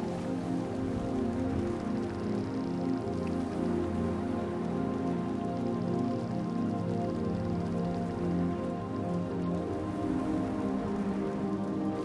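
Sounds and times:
calm ambient pad music: 0.0 - 12.0
soft steady hiss: 0.0 - 12.0.

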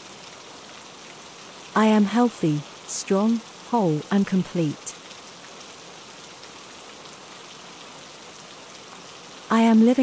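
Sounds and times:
steady rain falling: 0.0 - 10.0.

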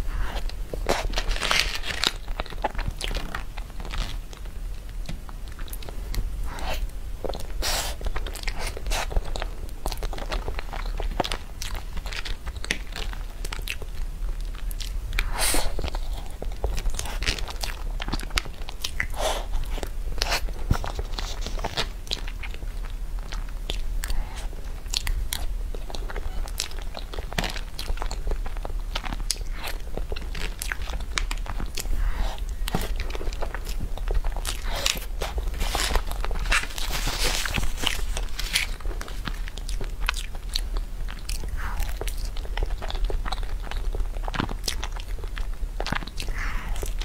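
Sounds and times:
wet chewing: 0.0 - 47.0.

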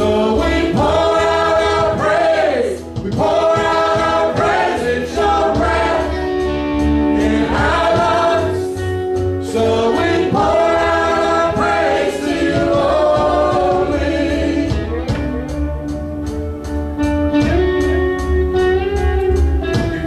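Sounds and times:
choir singing gospel song: 0.0 - 15.7
low bass accompaniment: 0.0 - 20.0.

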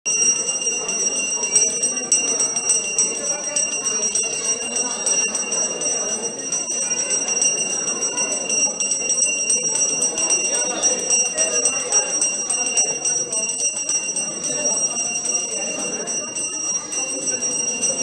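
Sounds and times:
murmur of many voices: 0.1 - 18.0
temple bells ringing: 0.1 - 18.0.

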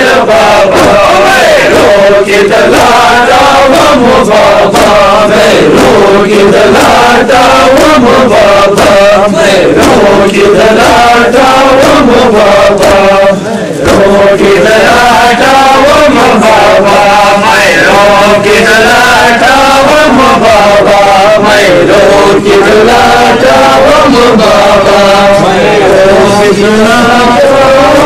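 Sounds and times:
men chanting a lament: 0.0 - 28.0.

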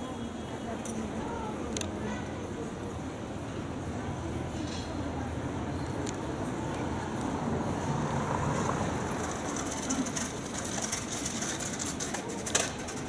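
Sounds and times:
city traffic rumble: 0.0 - 13.0.

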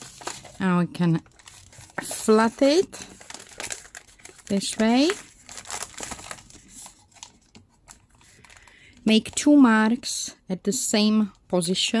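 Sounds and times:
paper bag rustling and crinkling: 0.0 - 9.4.

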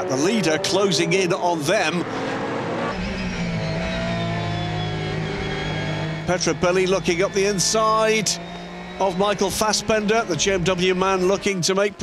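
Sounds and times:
race car engine accelerating: 0.0 - 12.0
race cars passing: 0.0 - 12.0.

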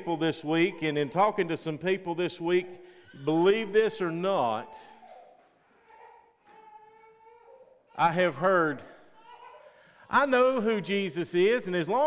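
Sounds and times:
baby whining: 2.8 - 3.9, 4.6 - 8.2, 9.0 - 9.9.

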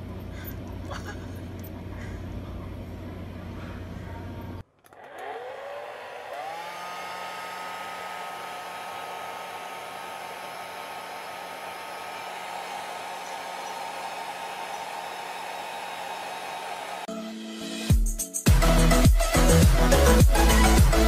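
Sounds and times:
hair dryer motor whine: 4.8 - 17.1.

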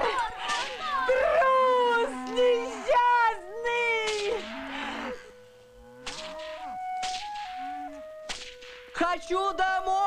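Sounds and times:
film score melody: 0.0 - 10.0
whip cracks: 0.4 - 0.8, 4.0 - 4.5, 6.0 - 7.7, 8.3 - 9.0.

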